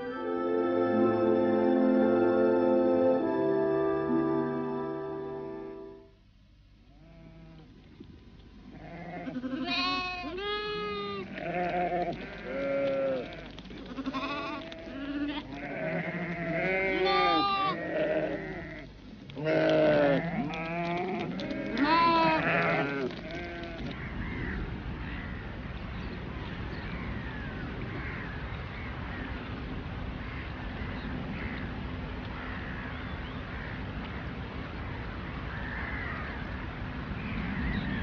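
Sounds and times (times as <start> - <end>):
flock of sheep bleating: 8.7 - 24.0.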